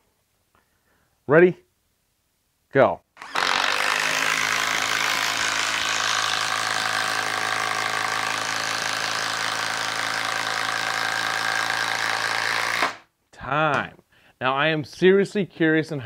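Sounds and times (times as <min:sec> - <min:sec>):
impact driver hammering into wood: 0:03.2 - 0:13.0.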